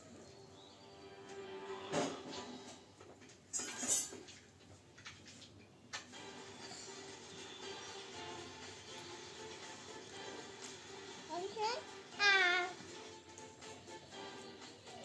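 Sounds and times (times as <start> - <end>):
faint television music: 0.0 - 15.0.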